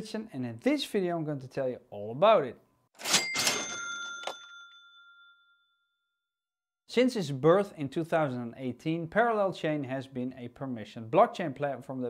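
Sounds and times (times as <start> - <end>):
man speaking: 0.0 - 2.6, 6.9 - 12.0.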